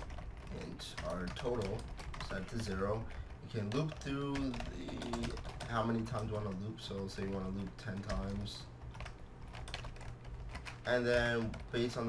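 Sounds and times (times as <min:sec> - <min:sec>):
typing on computer keyboard: 0:00.0 - 0:12.0.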